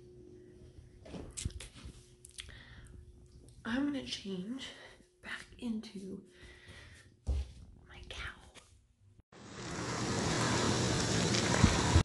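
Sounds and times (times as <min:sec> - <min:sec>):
hot tub jets churning water: 0:09.4 - 0:12.0.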